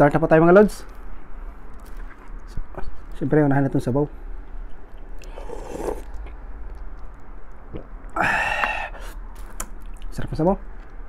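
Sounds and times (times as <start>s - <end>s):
slurping broth from a spoon: 5.2s - 6.3s
breathy inhale: 8.2s - 9.2s.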